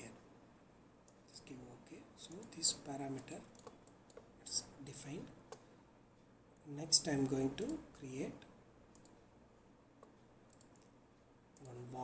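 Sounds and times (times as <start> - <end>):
faint room hiss: 0.0 - 12.0
man speaking: 1.3 - 3.5, 4.4 - 5.4, 6.6 - 8.5, 11.6 - 12.0
computer mouse clicks: 2.3 - 2.6, 3.2 - 4.3, 7.2 - 7.8, 8.9 - 9.2, 10.0 - 10.9.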